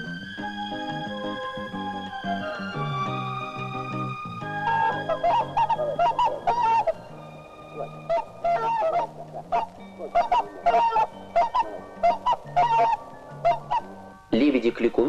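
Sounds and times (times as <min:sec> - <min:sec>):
swan calling: 0:01.0 - 0:15.0.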